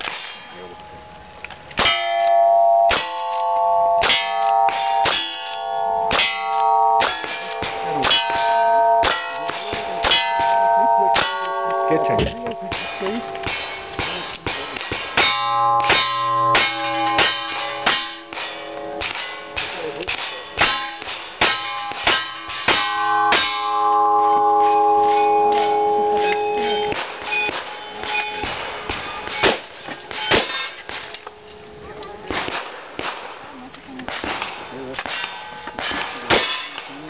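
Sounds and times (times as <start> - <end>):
metallic clang of steel targets: 0.0 - 0.8, 1.8 - 31.3, 34.1 - 37.0.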